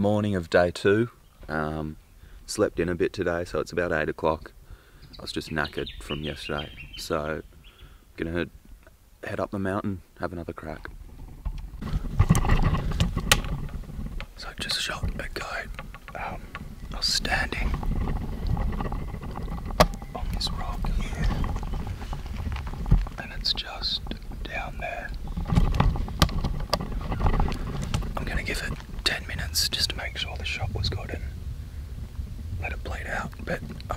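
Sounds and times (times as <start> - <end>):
wind buffeting microphone: 10.9 - 33.9
camera handling rumble: 11.1 - 30.5.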